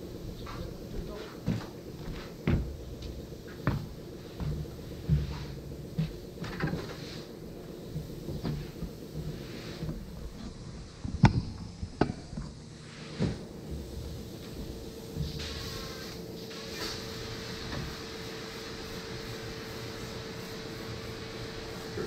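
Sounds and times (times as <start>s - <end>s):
workshop knocks and clatter: 1.4s - 7.0s.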